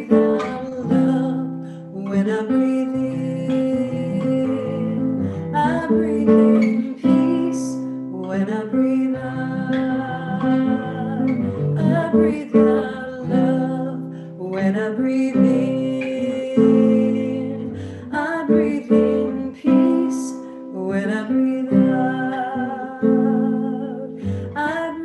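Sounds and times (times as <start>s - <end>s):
nylon-string guitar fingerpicked: 0.0s - 25.0s
woman singing: 0.0s - 25.0s.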